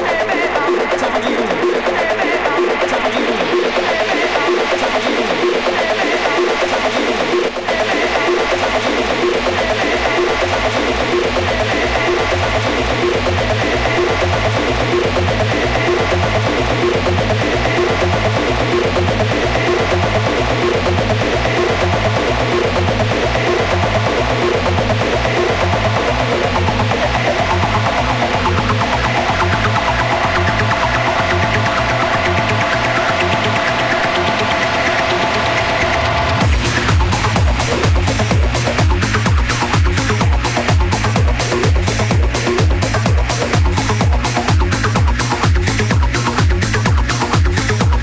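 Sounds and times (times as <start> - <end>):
four-on-the-floor kick drum: 36.4 - 48.0.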